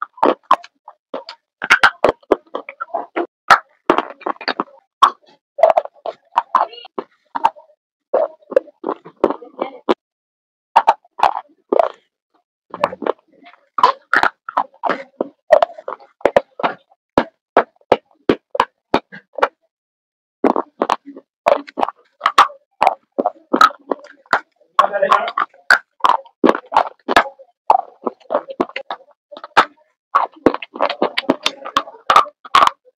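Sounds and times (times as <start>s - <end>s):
mouth clicks: 0.0s - 10.0s, 10.8s - 12.0s, 12.7s - 19.6s, 20.4s - 32.9s
crunchy food chewing: 8.2s - 9.4s, 10.8s - 12.0s, 12.7s - 19.6s, 20.4s - 24.6s, 25.3s - 32.8s.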